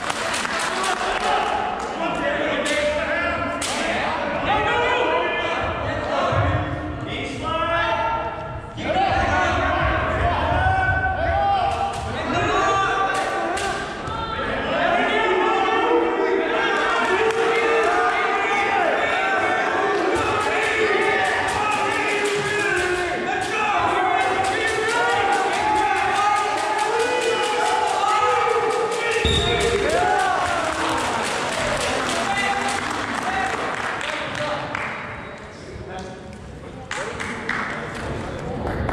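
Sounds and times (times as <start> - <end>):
voices shouting in a gymnasium: 0.0 - 38.5.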